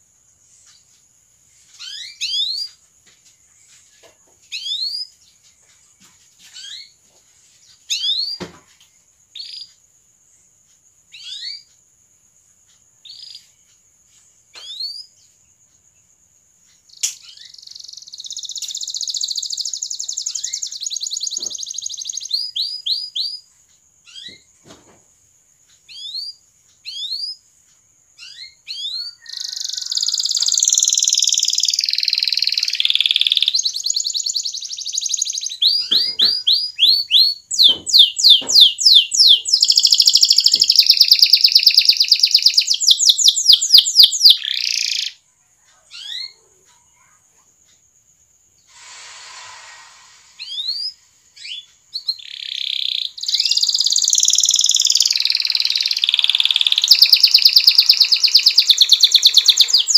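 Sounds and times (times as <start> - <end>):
canary singing: 1.7 - 2.8, 6.5 - 7.0, 7.8 - 8.5, 9.3 - 9.8, 11.1 - 11.7, 13.0 - 13.7, 16.8 - 24.5, 28.2 - 46.7, 50.4 - 59.9.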